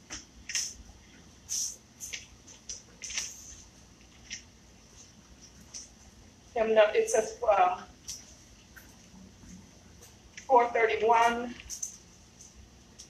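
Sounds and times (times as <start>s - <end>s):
book pages rustling: 1.6s - 6.0s.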